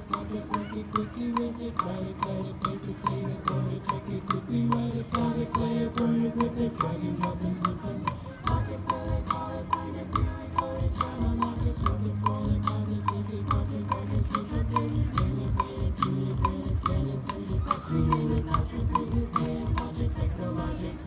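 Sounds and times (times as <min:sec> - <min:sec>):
steady ticking beat: 0:00.0 - 0:21.0.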